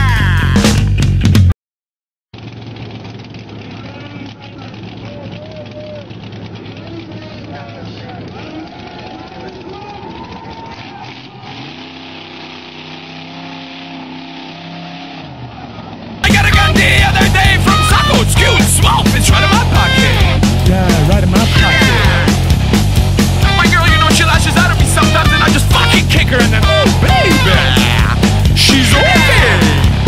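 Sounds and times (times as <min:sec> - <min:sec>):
loud rock music: 0:00.0 - 0:01.5, 0:16.2 - 0:30.0
buggy engine revving: 0:02.4 - 0:30.0
people's voices: 0:03.5 - 0:12.1, 0:15.5 - 0:30.0.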